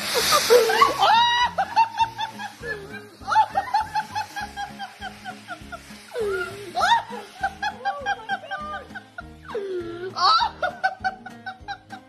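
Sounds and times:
background music: 0:00.0 - 0:12.0
woman laughing: 0:00.0 - 0:12.0.

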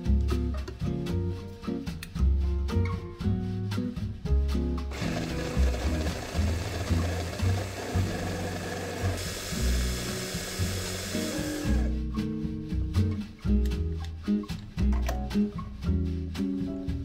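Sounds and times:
electric mini chopper grinding: 0:04.9 - 0:11.9.

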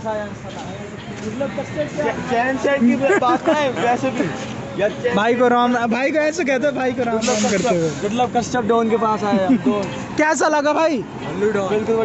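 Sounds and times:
men talking over each other: 0:00.0 - 0:12.0
short loud hiss: 0:07.2 - 0:08.0.

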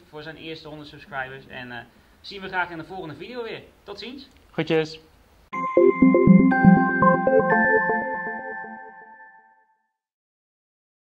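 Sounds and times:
electronic jingle chime tones: 0:05.5 - 0:09.8.

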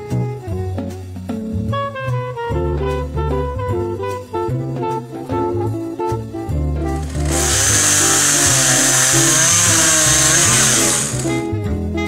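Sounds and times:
swing jazz music: 0:00.0 - 0:12.0
chainsaw running at high revs: 0:07.0 - 0:11.5.

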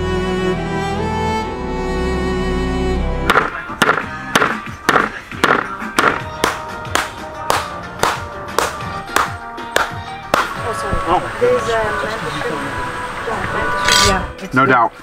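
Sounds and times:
background string music: 0:00.0 - 0:15.0
octopus beaten against ground: 0:03.3 - 0:10.5.

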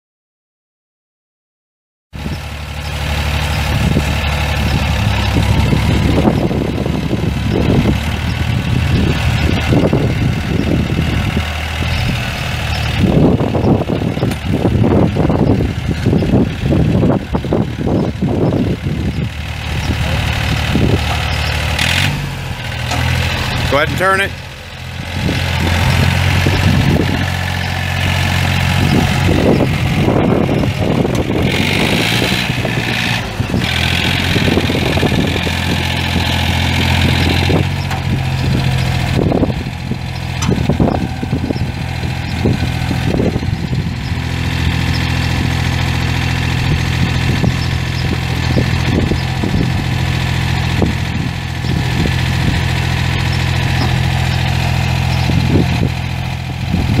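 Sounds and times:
diesel engine running: 0:02.2 - 0:57.0
clanks and rattles: 0:02.8 - 0:23.8, 0:24.8 - 0:57.0.

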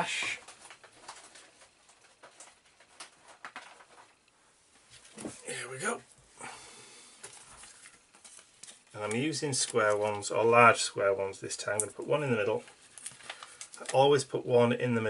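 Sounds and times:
craft supplies rummaged through: 0:00.0 - 0:04.2
person speaking: 0:05.2 - 0:06.1, 0:08.9 - 0:12.8, 0:13.8 - 0:15.0.

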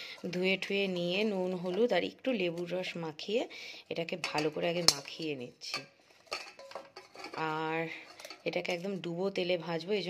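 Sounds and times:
clinks and knocks in steel bowl: 0:04.2 - 0:08.8.

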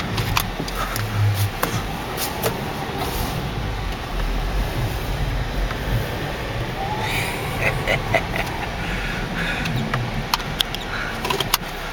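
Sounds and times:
car engine and tyres rumbling: 0:00.0 - 0:11.9.

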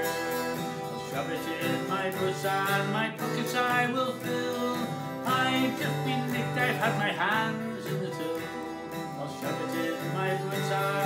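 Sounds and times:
acoustic guitar strumming chords: 0:00.0 - 0:11.0.

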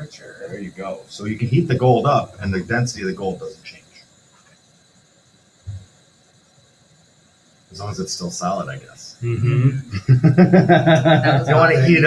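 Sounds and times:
high-pitched hiss: 0:00.0 - 0:12.0.

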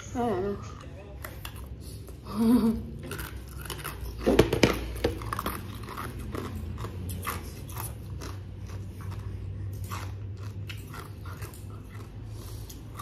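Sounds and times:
crunchy chewing of mango: 0:01.1 - 0:13.0.

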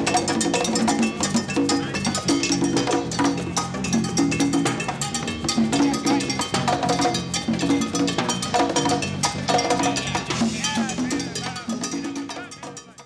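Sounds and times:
congas played by hand: 0:00.0 - 0:13.0
cowbell struck with sticks: 0:00.0 - 0:13.0.

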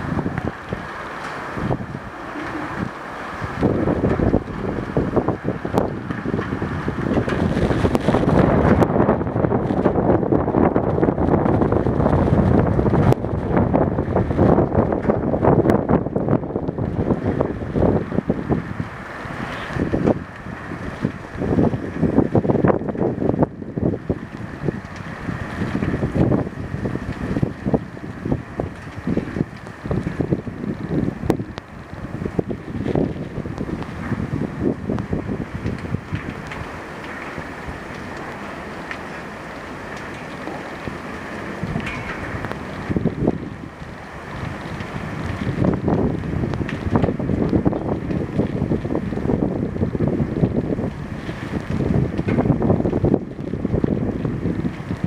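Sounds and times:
storm wind buffeting microphone: 0:00.0 - 0:55.0.

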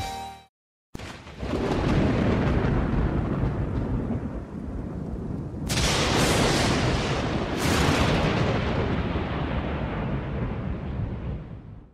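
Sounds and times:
rain: 0:01.0 - 0:11.9
rolling thunder: 0:01.0 - 0:11.9.

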